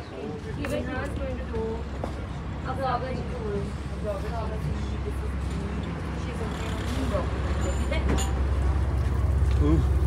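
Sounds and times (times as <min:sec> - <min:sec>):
faint voices talking: 0:00.0 - 0:08.5.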